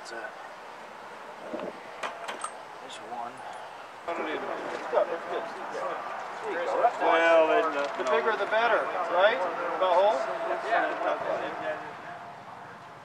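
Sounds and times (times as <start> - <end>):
indistinct voices talking: 2.5 - 13.0.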